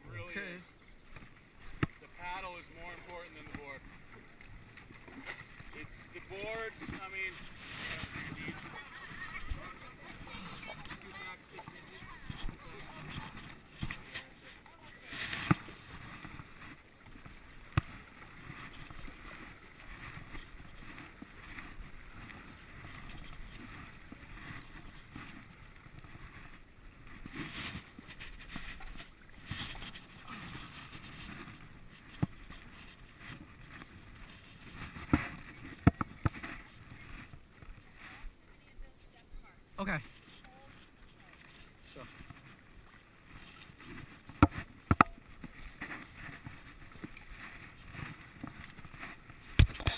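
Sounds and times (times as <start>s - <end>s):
paddle pulling through water: 0.0s - 49.9s.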